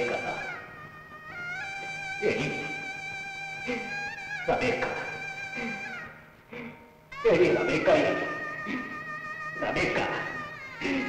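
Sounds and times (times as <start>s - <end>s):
sustained string notes: 0.0s - 11.0s
wavering wailing outbursts: 0.0s - 11.0s.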